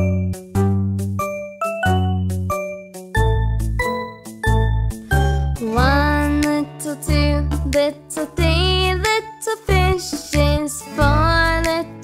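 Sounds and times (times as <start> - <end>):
instrumental children's music: 0.0 - 12.0.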